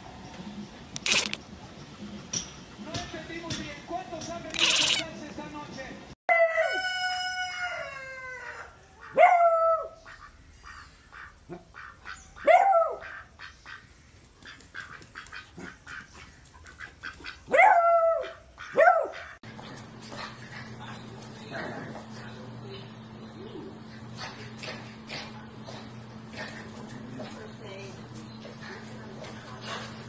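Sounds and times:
dog barking: 0:09.0 - 0:09.9, 0:12.4 - 0:13.2, 0:17.5 - 0:19.3.

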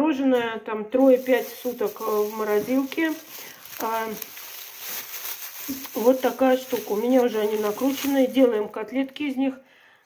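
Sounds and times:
plastic bag crinkling: 0:01.0 - 0:08.9.

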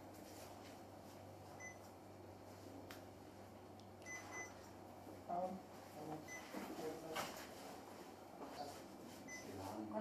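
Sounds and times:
short faint beep: 0:01.6 - 0:01.8, 0:04.0 - 0:04.6, 0:09.3 - 0:09.6.

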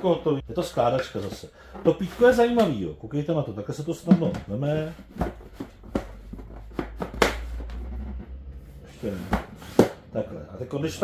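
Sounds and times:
light plastic knocks and clatters: 0:04.1 - 0:07.9
low rumble: 0:07.5 - 0:09.6.

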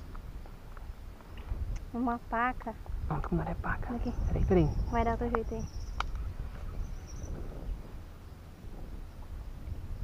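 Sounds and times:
wind buffeting microphone: 0:00.0 - 0:10.0
faint high chirp: 0:04.0 - 0:07.4.

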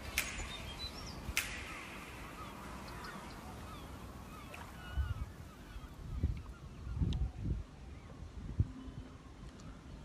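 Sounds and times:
sharp clicks: 0:00.0 - 0:02.2
birds chirping: 0:00.0 - 0:10.0
wind rumble on microphone: 0:00.0 - 0:10.0.

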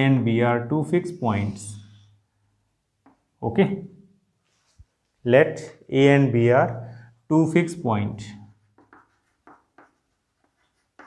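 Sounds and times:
chalk scraping on chalkboard: 0:01.0 - 0:02.1, 0:08.5 - 0:11.0.

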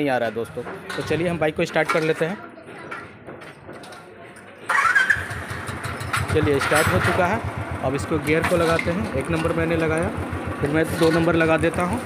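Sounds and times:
motorcycle engine starting and idling: 0:04.7 - 0:12.0.

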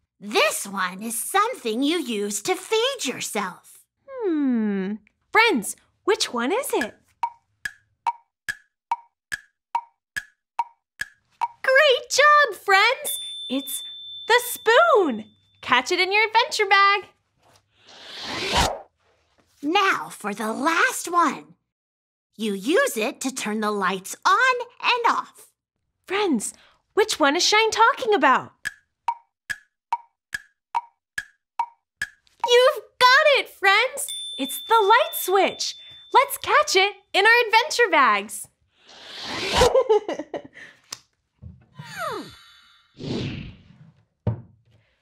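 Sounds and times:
wood-block timer ticks: 0:06.7 - 0:11.6, 0:28.6 - 0:32.2.

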